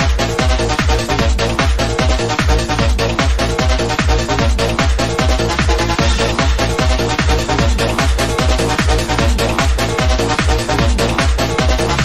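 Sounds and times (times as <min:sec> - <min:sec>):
fast dance music: 0:00.0 - 0:12.0
kick drum pounding: 0:00.0 - 0:12.0.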